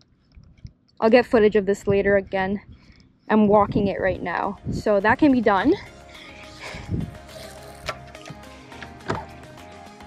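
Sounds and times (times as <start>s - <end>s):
music of sustained tones: 5.8s - 10.0s.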